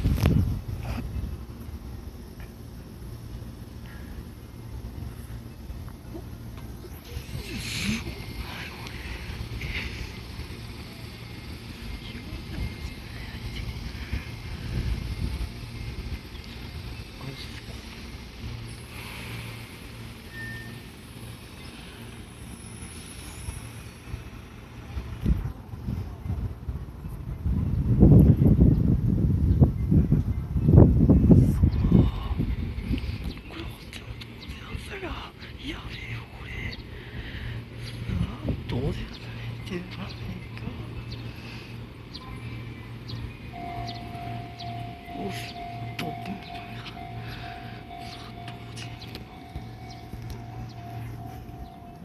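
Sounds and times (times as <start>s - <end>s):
electric trains humming: 0.0s - 52.0s
thin steady high tone: 1.6s - 26.2s, 31.6s - 52.0s.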